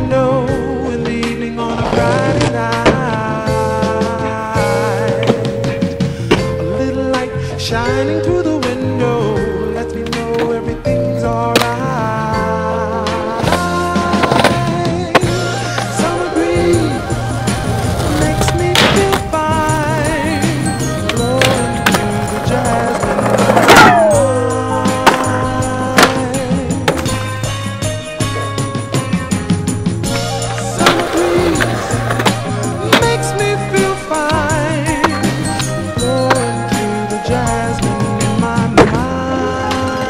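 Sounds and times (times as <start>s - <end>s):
backing music with bass: 0.0s - 40.0s
skateboard rolling on concrete: 0.9s - 7.2s, 8.4s - 40.0s
skateboard impacts: 1.8s - 4.2s, 4.9s - 6.6s, 11.4s - 12.1s, 13.1s - 27.6s, 30.1s - 40.0s.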